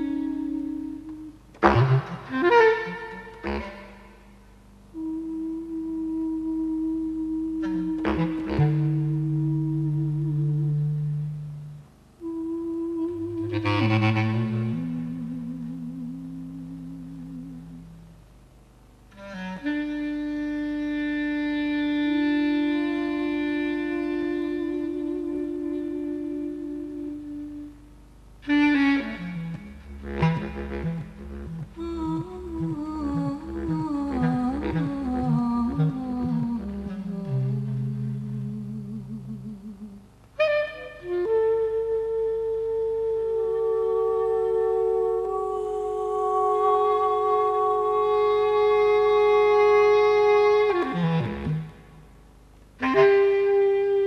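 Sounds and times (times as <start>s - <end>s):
jazz on saxophone and synthesizer: 0.0s - 4.3s, 4.9s - 17.9s, 19.1s - 27.8s, 28.4s - 39.6s, 40.4s - 52.0s, 52.8s - 54.0s.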